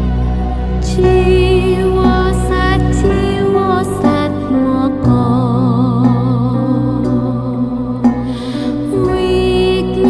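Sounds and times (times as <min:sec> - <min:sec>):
low drone: 0:00.0 - 0:10.0
sustained wavering melody: 0:00.0 - 0:10.0.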